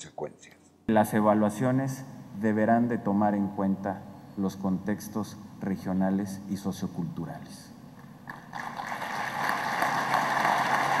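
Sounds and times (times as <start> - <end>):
audience applause: 8.3 - 11.0.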